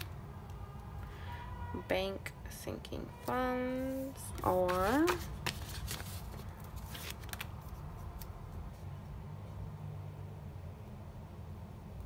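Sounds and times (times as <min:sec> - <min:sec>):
paper rustles and taps: 0:04.3 - 0:07.5.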